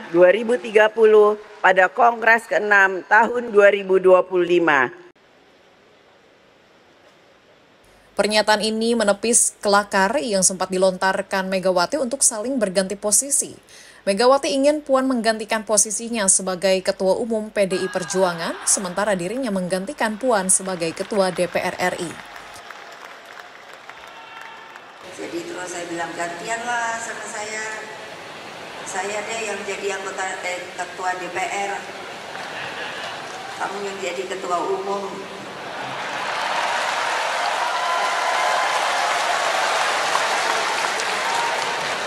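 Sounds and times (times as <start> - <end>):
audience applauding: 18.0 - 25.2, 31.9 - 33.6, 35.4 - 42.0.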